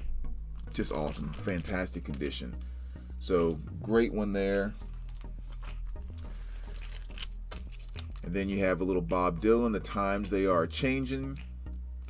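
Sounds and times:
plastic sleeves rustling: 0.6s - 3.7s, 4.6s - 8.4s.

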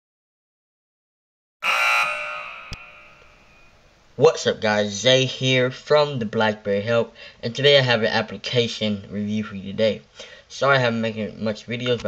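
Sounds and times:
electronic chord-like tone: 1.6s - 4.0s
short click: 2.2s - 3.7s.

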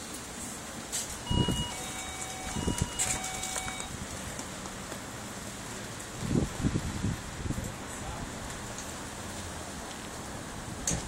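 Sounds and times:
two-note tone: 1.2s - 3.9s.

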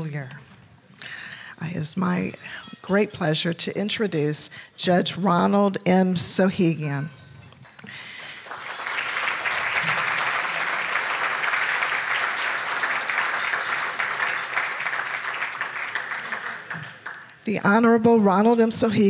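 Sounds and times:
audience applauding: 8.0s - 17.4s.

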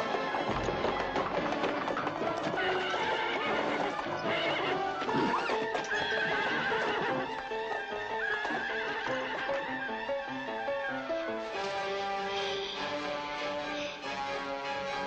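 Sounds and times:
film score music: 0.0s - 15.0s
hooves clip-clopping: 0.0s - 15.0s
horse neighing: 2.5s - 9.5s.

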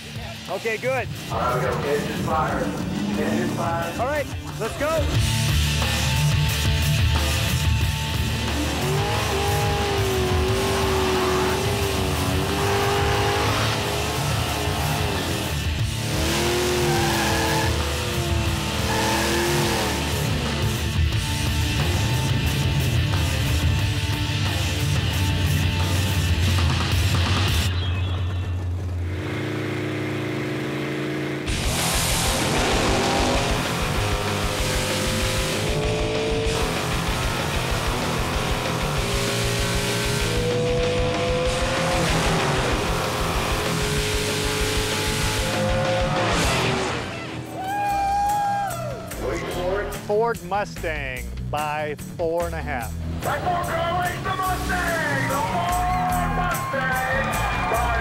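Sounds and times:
heavy rock music: 0.0s - 29.1s, 31.4s - 58.0s
engines revving: 0.0s - 47.6s, 49.0s - 58.0s.

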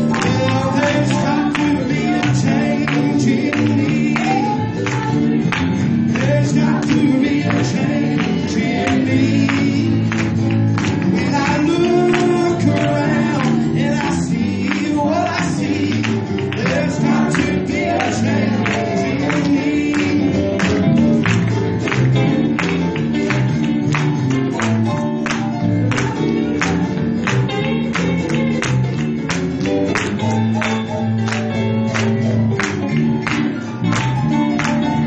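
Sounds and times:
gospel choir with band: 0.0s - 28.8s.

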